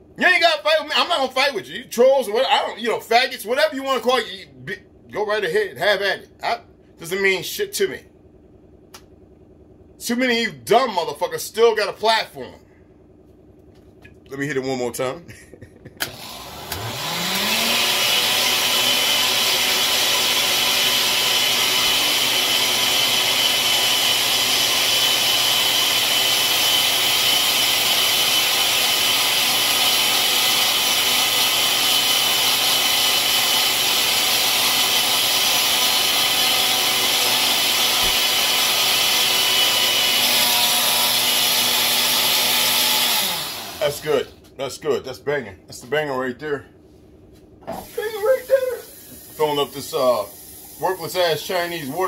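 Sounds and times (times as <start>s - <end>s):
blender motor running: 16.0s - 44.2s, 47.7s - 52.0s.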